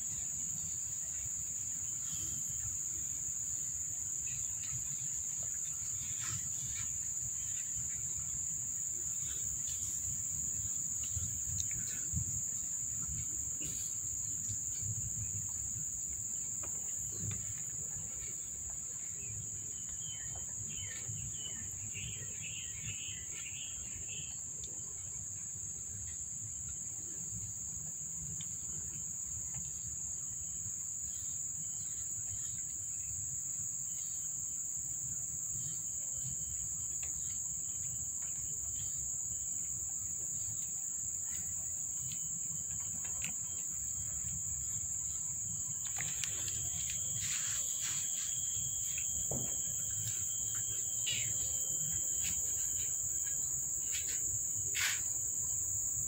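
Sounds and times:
insect chirping: 0:00.0 - 0:56.0
insects droning: 0:00.0 - 0:56.0.

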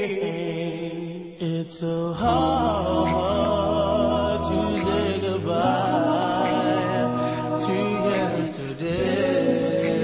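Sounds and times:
male vocal group singing a cappella: 0:00.0 - 0:10.0.

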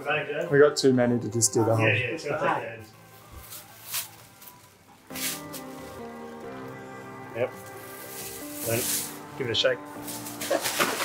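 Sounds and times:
music with held notes: 0:00.0 - 0:11.0.

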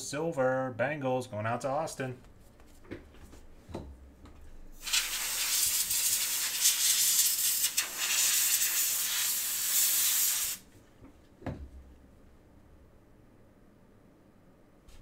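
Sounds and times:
soft knock: 0:02.9 - 0:04.4, 0:11.4 - 0:11.8
loud steady hiss: 0:04.8 - 0:10.7.

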